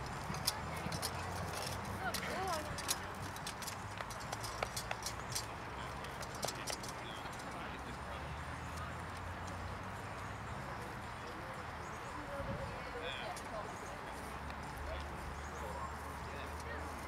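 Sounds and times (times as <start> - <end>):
horse hooves clip-clopping: 0.0 - 11.6.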